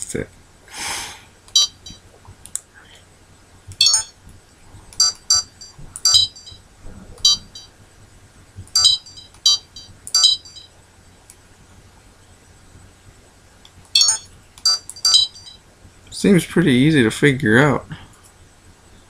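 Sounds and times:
camera electronic beeps: 0:01.5 - 0:02.0, 0:03.8 - 0:04.2, 0:05.0 - 0:06.6, 0:07.2 - 0:07.7, 0:08.7 - 0:10.7, 0:14.0 - 0:15.6.

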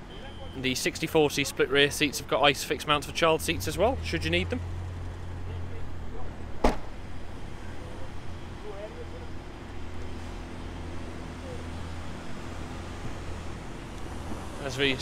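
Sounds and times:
car tailgate slamming shut: 0:06.6 - 0:07.0.

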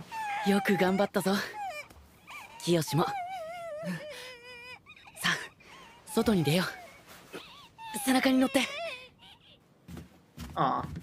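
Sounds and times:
high wavering voice crying: 0:00.1 - 0:09.6.

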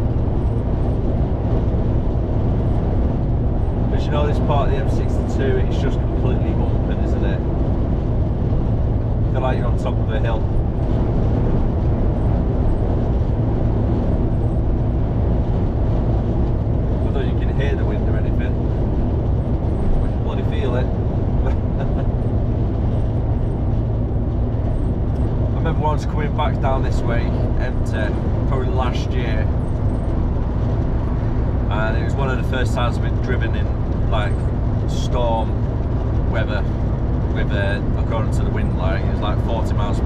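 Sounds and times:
lorry engine drone: 0:00.0 - 0:40.0
tyre and road noise: 0:00.0 - 0:40.0.

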